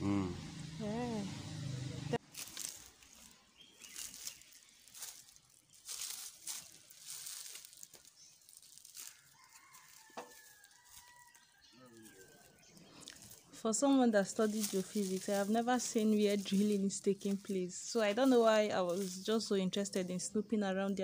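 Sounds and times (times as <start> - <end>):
faint outdoor ambience: 0.0 - 21.0
rustling bursts: 2.2 - 11.1, 12.0 - 20.1.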